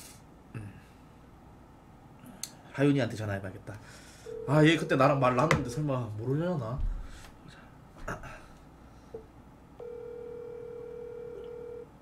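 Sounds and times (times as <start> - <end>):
telephone ringback tone: 4.3 - 4.9, 9.8 - 11.9.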